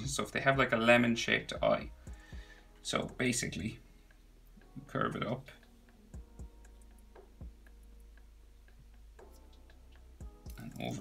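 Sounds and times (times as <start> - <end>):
soft low thumps: 6.1 - 10.6.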